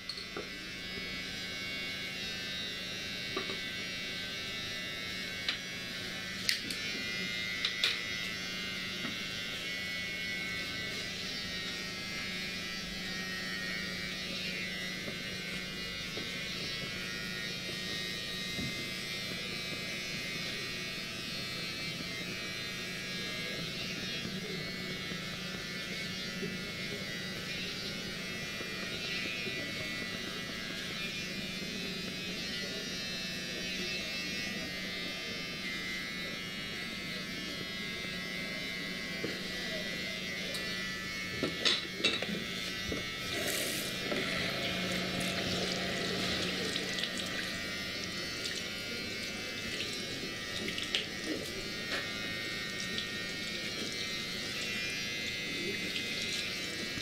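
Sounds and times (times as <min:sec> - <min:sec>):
electric hair clippers buzzing: 0:00.0 - 0:57.0.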